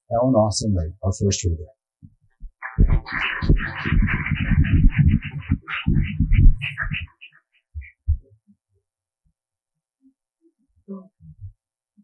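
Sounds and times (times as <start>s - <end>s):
microphone handling thumps: 2.0s - 7.1s, 7.8s - 8.3s.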